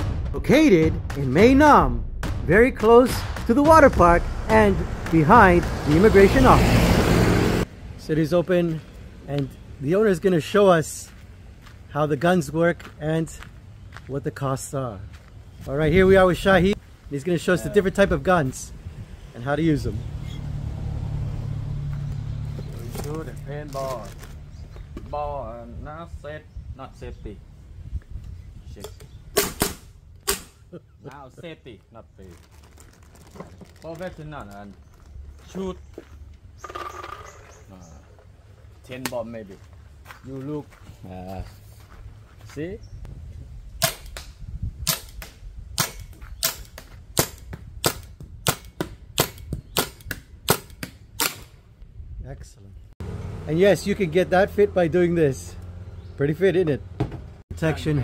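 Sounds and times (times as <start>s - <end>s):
man's voice: 0.4s - 6.7s
paintball marker shots: 29.3s - 30.6s.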